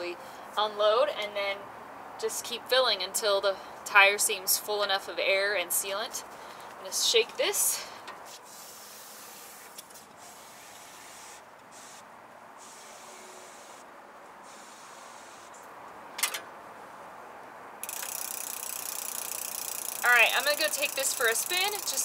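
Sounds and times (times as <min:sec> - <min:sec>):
gas canister hissing into tyre: 0:08.3 - 0:12.0.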